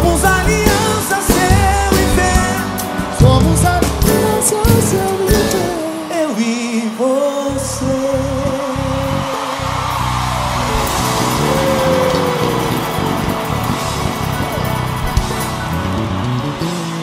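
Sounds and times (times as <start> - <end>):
live band music: 0.0 - 6.2, 7.6 - 17.0
stepping bass line: 7.5 - 17.0.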